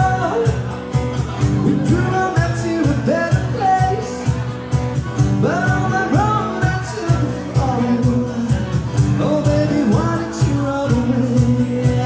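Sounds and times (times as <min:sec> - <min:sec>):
person singing: 0:00.0 - 0:00.8, 0:01.5 - 0:04.6, 0:05.2 - 0:12.0
acoustic guitar strummed: 0:00.0 - 0:12.0
cajon beat: 0:00.0 - 0:12.0.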